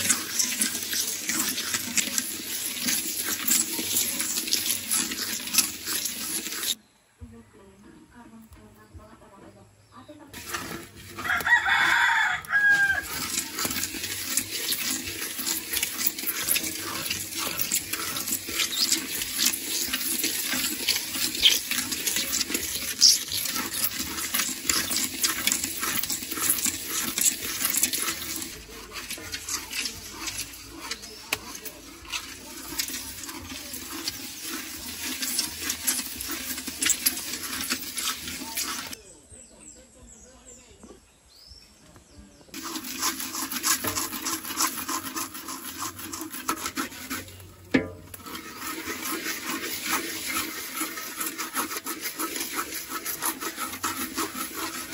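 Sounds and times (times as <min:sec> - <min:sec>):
utensil scraping grains in metal pan: 0:00.0 - 0:06.8, 0:10.3 - 0:39.0, 0:42.5 - 0:54.9
rooster crowing: 0:11.2 - 0:13.3.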